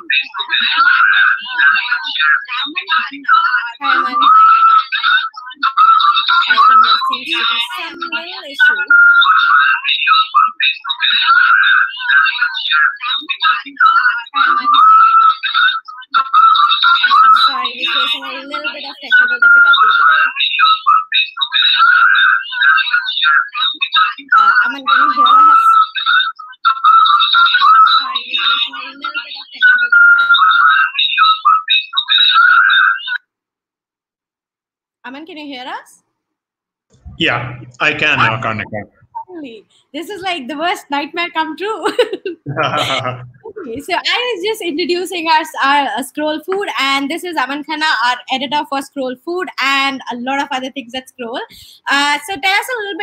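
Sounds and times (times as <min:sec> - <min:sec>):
tinny garbled speech: 0:00.0 - 0:33.2, 0:37.0 - 0:53.0
audio feedback whistling: 0:03.9 - 0:12.4, 0:13.1 - 0:33.2
tinny distorted music: 0:36.9 - 0:48.6.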